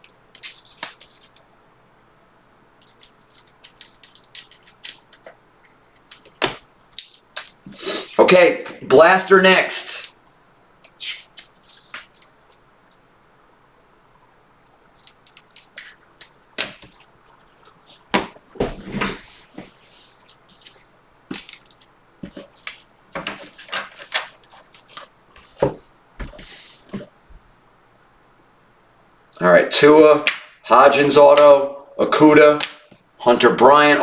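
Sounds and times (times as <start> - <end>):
card packaging crackling: 0.0 - 1.4, 2.8 - 7.8, 11.0 - 13.0, 14.9 - 18.2, 20.0 - 25.6.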